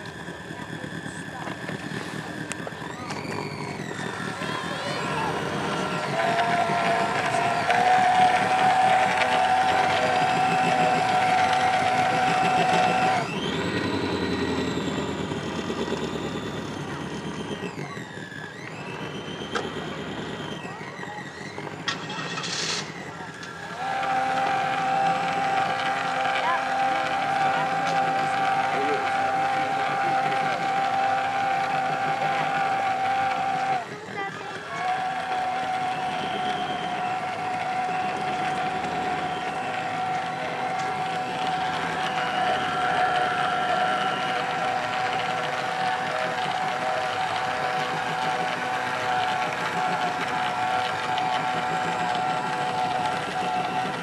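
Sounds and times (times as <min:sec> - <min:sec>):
model boat motor whine: 0:00.0 - 0:54.0.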